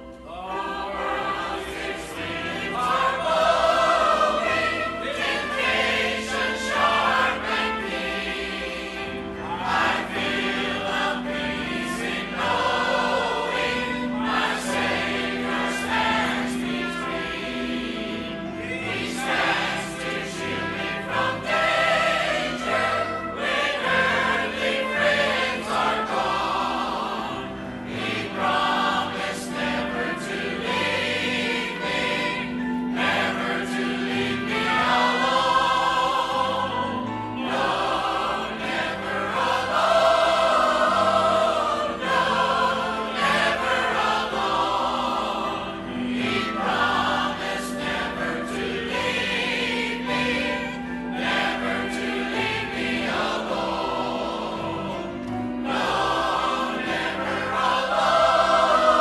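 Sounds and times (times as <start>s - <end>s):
church choir singing a hymn: 0.0s - 59.0s.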